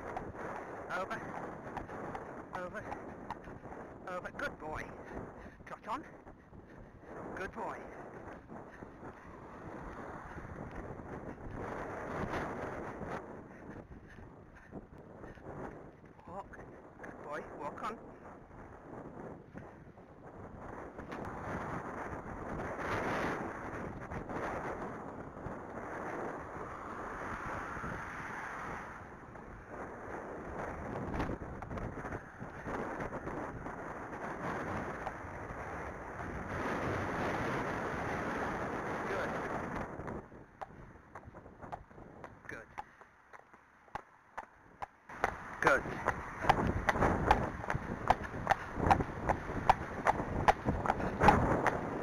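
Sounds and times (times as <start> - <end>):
horse hooves on paved lane: 0.0 - 7.3, 7.9 - 16.2, 29.2 - 52.0
wind buffeting microphone: 0.0 - 52.0.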